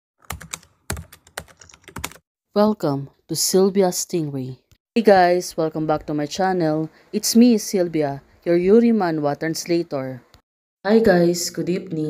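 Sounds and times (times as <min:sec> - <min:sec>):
keyboard typing: 0:00.2 - 0:02.2.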